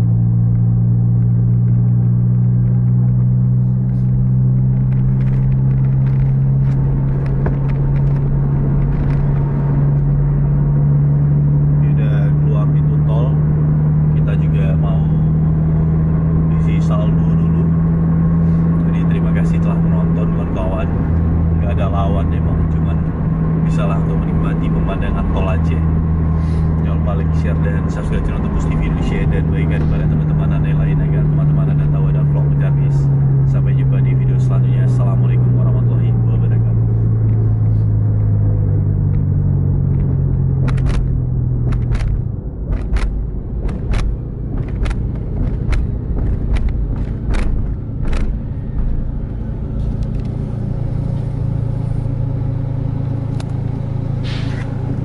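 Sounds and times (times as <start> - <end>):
engine and tyre road noise: 0.0 - 55.0
sharp clicks: 39.9 - 48.9.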